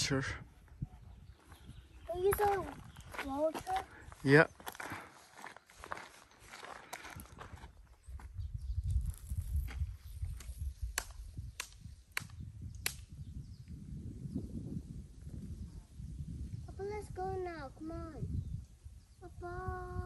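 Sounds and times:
low wind rumble: 0.0s - 5.0s, 7.1s - 20.0s
footsteps on gravel: 2.0s - 8.4s
sharp clicks: 10.4s - 13.1s.

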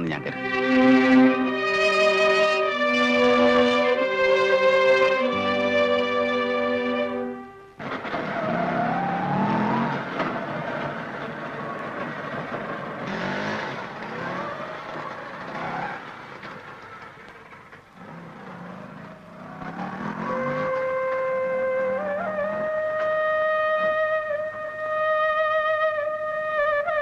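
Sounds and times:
music: 0.0s - 7.8s, 20.5s - 27.0s
auto-rickshaw engine revving: 0.0s - 27.0s.

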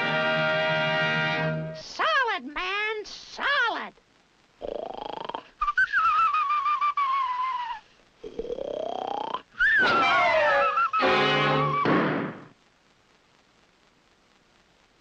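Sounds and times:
comic cartoon music with sliding tones: 9.6s - 11.9s.

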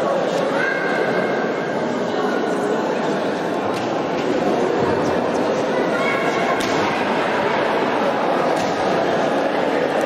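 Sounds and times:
crowd of spectators: 0.0s - 10.0s.

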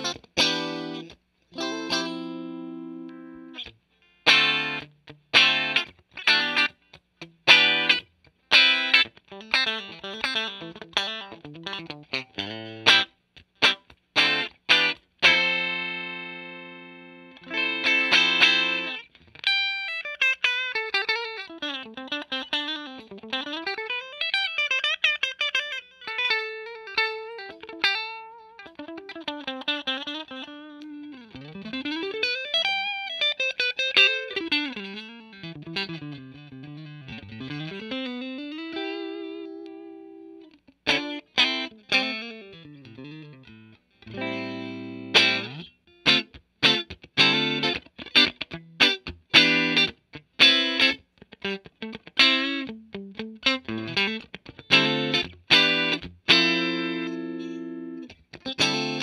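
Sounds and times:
clean electric guitar chord ringing: 0.0s - 3.7s, 14.2s - 19.0s, 44.1s - 49.9s
choppy strummed guitar chords: 0.0s - 19.1s, 32.7s - 59.0s.

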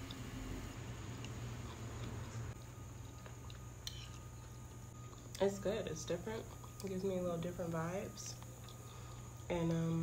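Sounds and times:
steady low hum: 0.0s - 10.0s
quiet chewing: 1.1s - 5.4s, 6.4s - 7.0s, 8.3s - 9.5s.

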